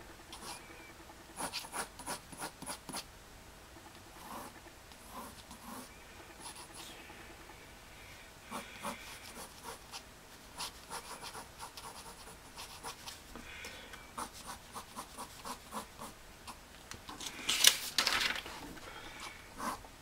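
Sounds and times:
pencil scratching on paper: 0:01.4 - 0:03.0, 0:04.2 - 0:06.8, 0:08.5 - 0:13.2, 0:14.2 - 0:16.2, 0:19.6 - 0:19.8.

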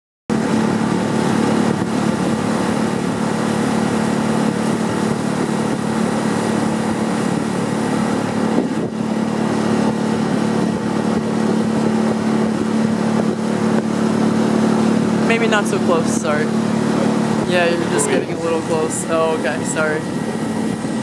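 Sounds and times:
outboard motor running: 0:00.3 - 0:21.0.

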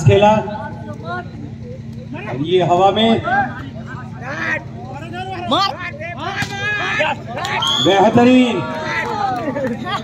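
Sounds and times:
crowd voices shouting: 0:03.0 - 0:10.0.

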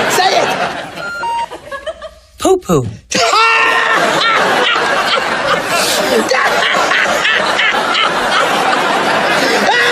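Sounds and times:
studio audience laughing: 0:00.0 - 0:02.3, 0:03.7 - 0:09.9.

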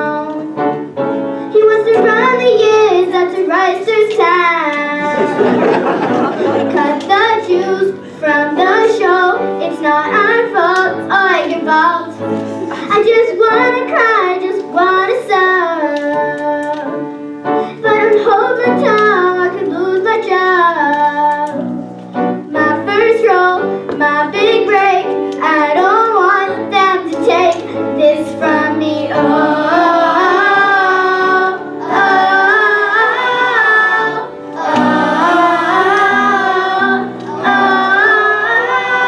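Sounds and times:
instrumental accompaniment: 0:00.0 - 0:39.0
girls singing: 0:01.6 - 0:17.0, 0:22.5 - 0:39.0.

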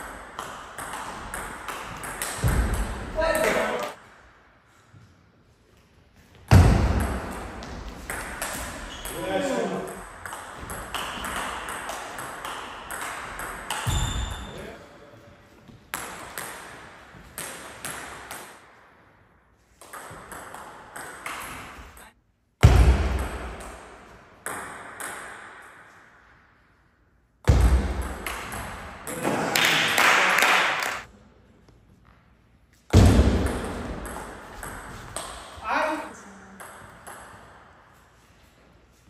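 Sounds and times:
ball bouncing on table: 0:00.4 - 0:03.8, 0:09.8 - 0:14.5
ping pong ball clicking off paddles: 0:10.0 - 0:14.0.

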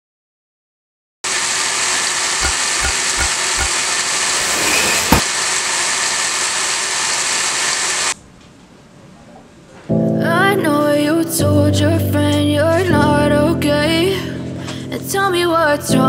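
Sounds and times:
sharp click: 0:02.4 - 0:05.3
loud steady rushing noise: 0:02.4 - 0:05.7.

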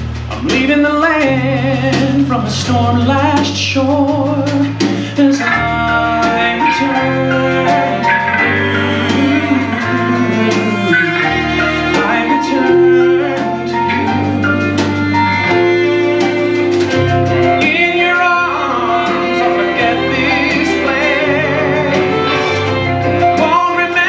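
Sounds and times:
drum and cymbal strikes: 0:00.0 - 0:24.0
live band playing: 0:00.0 - 0:24.0
man singing: 0:00.3 - 0:15.3, 0:17.4 - 0:24.0
held string chords: 0:04.0 - 0:24.0.

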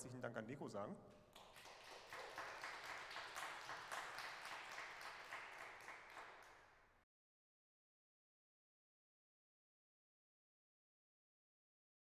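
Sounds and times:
faint audience applause: 0:01.3 - 0:06.8.

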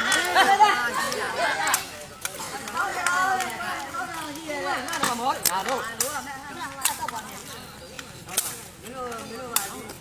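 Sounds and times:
people talking and calling out: 0:00.0 - 0:10.0.

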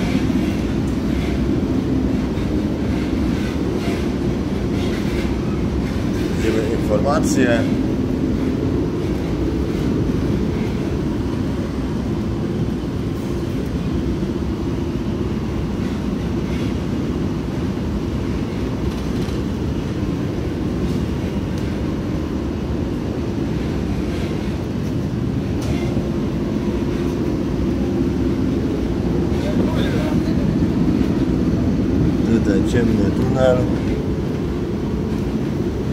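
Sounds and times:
train rumbling in tunnel: 0:00.0 - 0:35.9.

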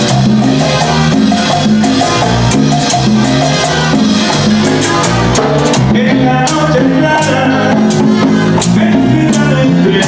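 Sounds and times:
latin band playing: 0:00.0 - 0:10.0
sharp percussion strikes: 0:00.0 - 0:10.0.

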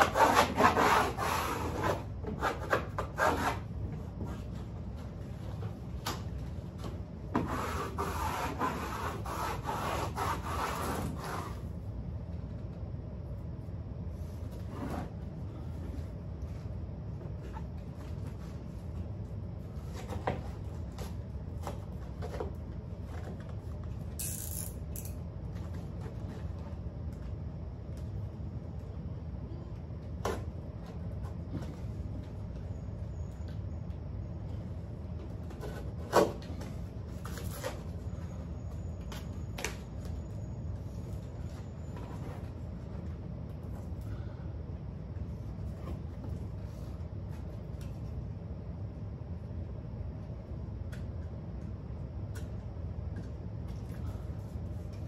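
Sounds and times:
wallpaper rubbing against wall: 0:00.0 - 0:05.8, 0:07.3 - 0:11.8
steady low hum: 0:00.0 - 0:55.0.

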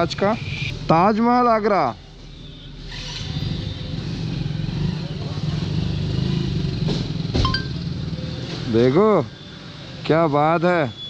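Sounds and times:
short electronic beep: 0:07.5 - 0:07.8.

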